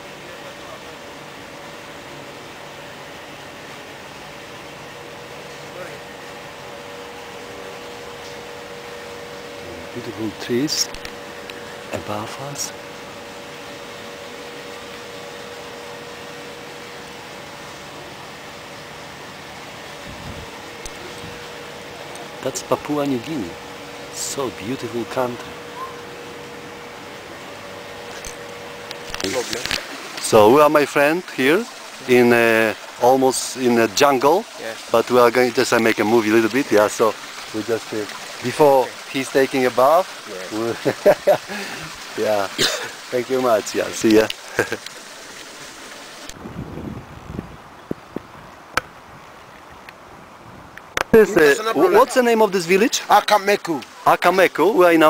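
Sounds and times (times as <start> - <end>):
background hiss: 0.0 - 55.0
faint constant hum: 0.0 - 55.0
men talking: 9.5 - 12.9, 21.8 - 25.6, 29.1 - 44.8, 51.1 - 55.0.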